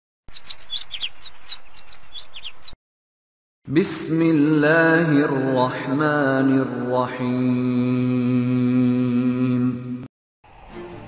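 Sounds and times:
small birds chirping: 0:00.3 - 0:02.8
faint hiss: 0:10.4 - 0:11.0.

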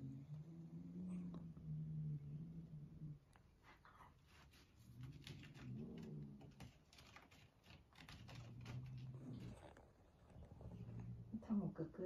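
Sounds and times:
cat claws scratching post: 0:04.3 - 0:09.8.

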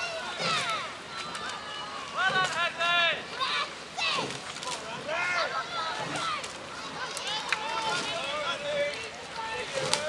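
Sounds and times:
people shouting encouragement: 0:00.0 - 0:10.0.

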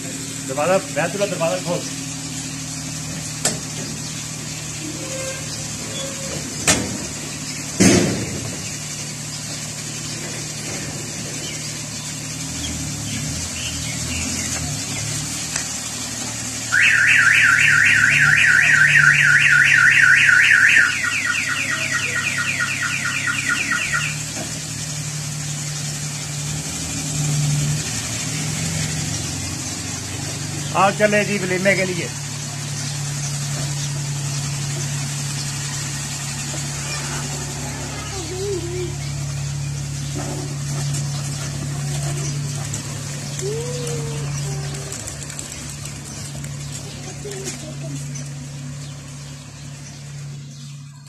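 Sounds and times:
van engine idling: 0:00.0 - 0:51.0
car alarm siren warbling: 0:16.7 - 0:24.5.

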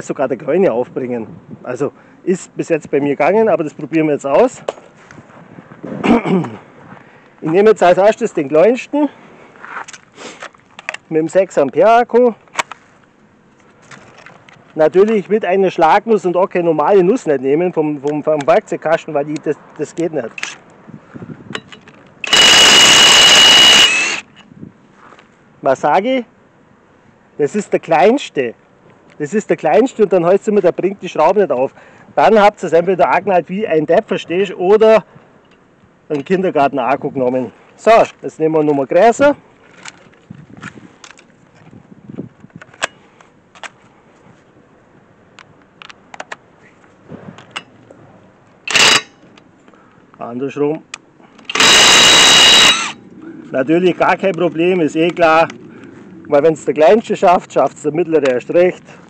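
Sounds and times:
impact wrench burst: 0:22.2 - 0:24.3, 0:48.7 - 0:49.2, 0:51.4 - 0:53.0
high whine: 0:22.2 - 0:24.4, 0:51.5 - 0:57.0
impact wrench hammering: 0:48.7 - 0:49.2, 0:51.5 - 0:53.0.

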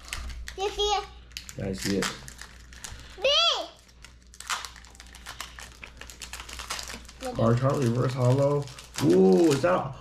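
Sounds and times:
child exclaiming: 0:00.6 - 0:01.1, 0:03.2 - 0:03.8.

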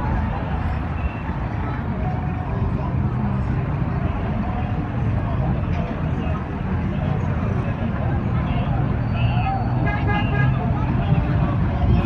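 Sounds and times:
traffic engines rumbling: 0:00.0 - 0:12.0.

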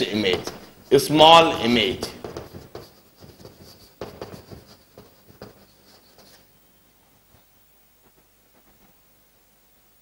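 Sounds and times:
chalk tapping and scratching: 0:00.0 - 0:06.5.

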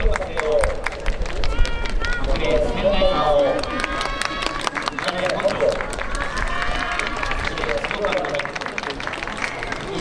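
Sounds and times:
scattered sharp claps: 0:00.0 - 0:02.6, 0:03.4 - 0:10.0.

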